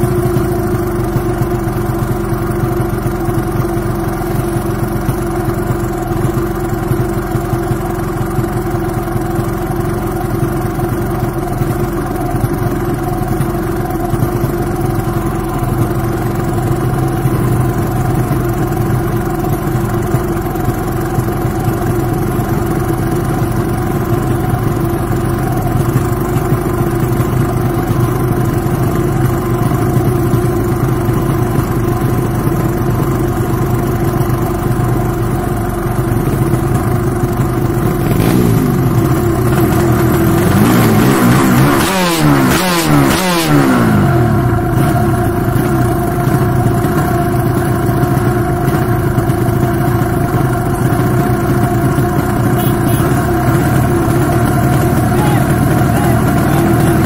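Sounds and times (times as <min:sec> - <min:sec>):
motorcycle engine idling: 0:00.0 - 0:57.0
motorcycle throttle blips: 0:35.2 - 0:57.0.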